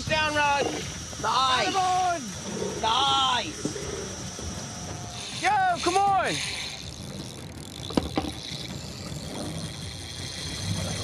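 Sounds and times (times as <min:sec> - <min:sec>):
boat engine running: 0:00.0 - 0:11.0.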